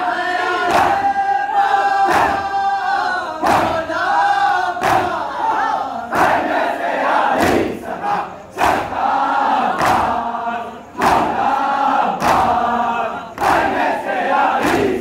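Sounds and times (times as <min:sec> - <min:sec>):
men chanting a lament: 0:00.0 - 0:15.0.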